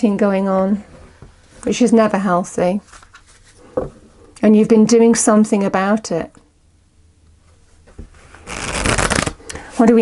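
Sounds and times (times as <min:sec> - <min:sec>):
cards riffling: 0:08.5 - 0:09.4.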